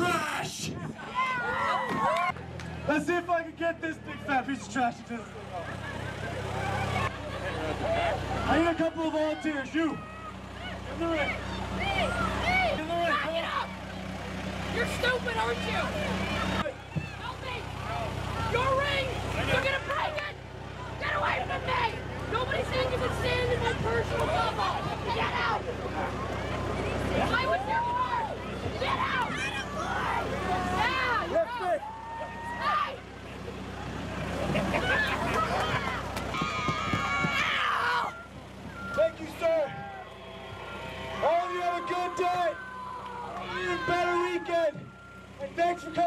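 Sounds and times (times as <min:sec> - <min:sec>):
people shouting: 0:00.0 - 0:02.4, 0:06.3 - 0:13.9, 0:14.7 - 0:33.1, 0:34.6 - 0:45.1
diesel engine idling: 0:00.0 - 0:46.0
people talking and calling out: 0:00.0 - 0:46.0.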